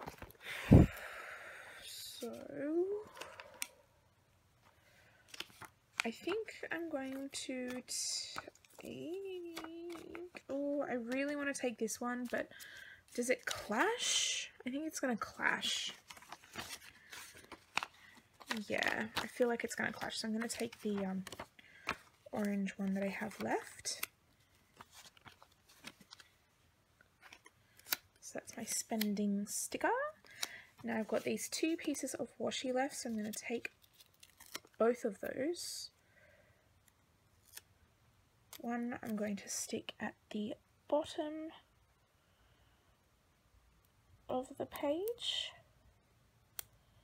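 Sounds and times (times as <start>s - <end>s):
paper sheets rustling: 15.4s - 26.4s.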